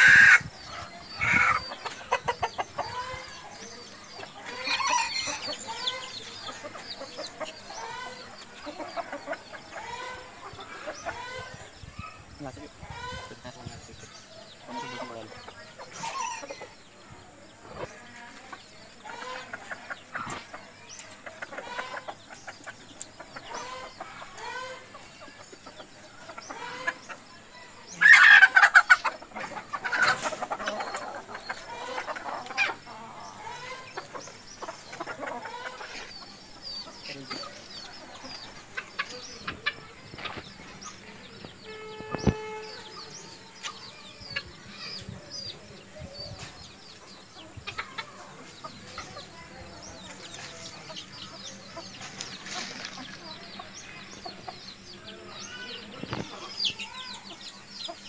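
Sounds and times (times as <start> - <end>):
chickens clucking: 0.0 - 58.0.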